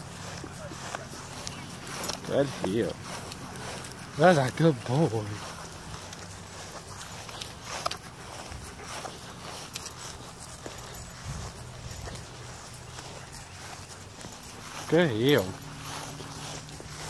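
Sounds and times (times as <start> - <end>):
footsteps through grass: 0.0 - 17.0.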